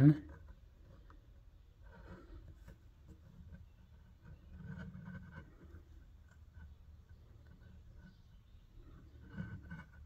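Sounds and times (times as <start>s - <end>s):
fingers rubbing rough stone: 0.2s - 10.0s.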